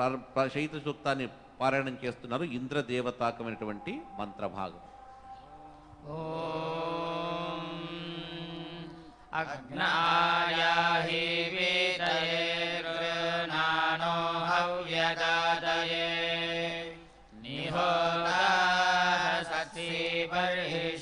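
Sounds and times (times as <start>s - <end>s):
group chanting in unison: 3.5s - 21.0s.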